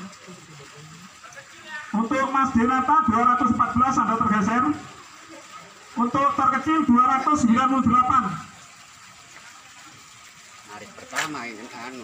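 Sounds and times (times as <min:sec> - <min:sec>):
faint steady hiss: 0:00.0 - 0:12.0
man announcing: 0:01.2 - 0:05.0, 0:06.0 - 0:08.6.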